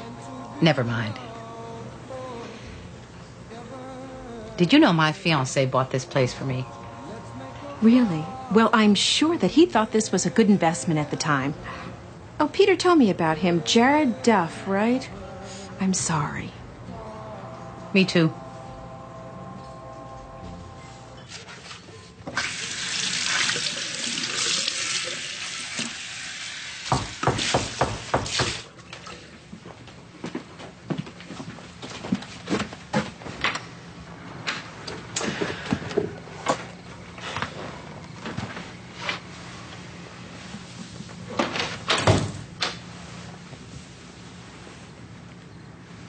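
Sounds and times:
tap water running: 22.3s - 29.2s
door shutting with thud: 41.4s - 42.4s.

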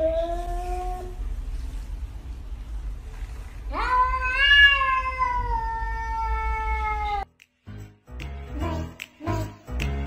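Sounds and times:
cat meowing: 3.7s - 7.3s.

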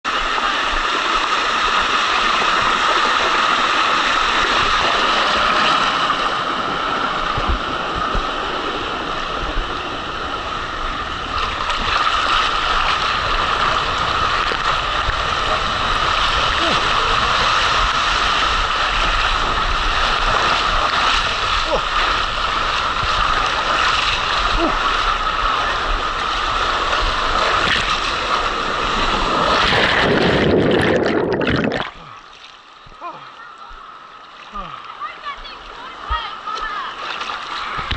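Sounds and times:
water rushing down a slide: 0.1s - 32.1s, 36.0s - 37.9s.

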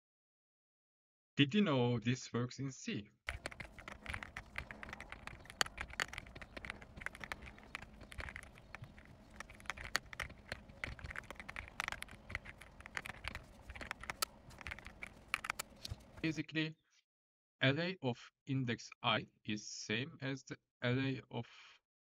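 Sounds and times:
computer keyboard typing: 3.3s - 16.3s.

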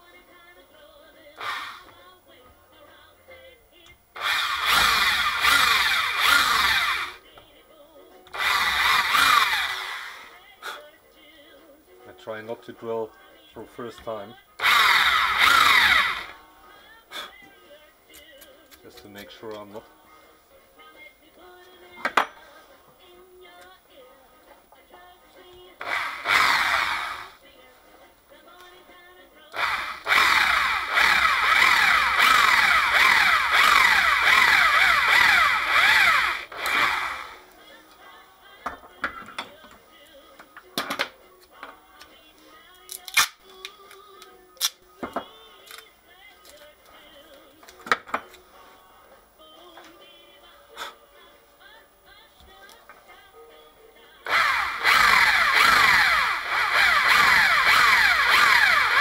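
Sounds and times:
faint background music: 0.0s - 59.0s
power drill boring into plastic: 1.4s - 2.0s, 4.2s - 7.2s, 8.3s - 10.4s, 14.6s - 16.4s, 25.8s - 27.4s, 29.5s - 37.5s, 54.3s - 59.0s
tools knocking: 22.0s - 22.4s.

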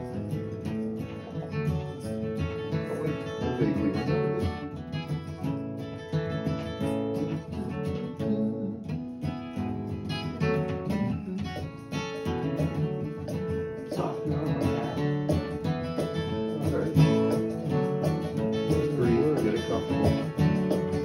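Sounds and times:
acoustic guitar strumming and picking: 0.0s - 21.0s.

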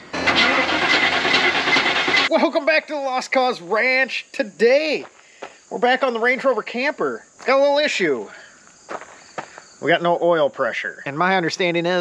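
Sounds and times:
engine cranking on starter motor: 0.0s - 2.3s.

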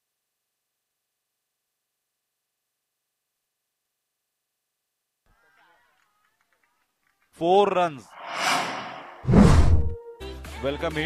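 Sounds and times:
whoosh sound effects: 8.1s - 10.0s.

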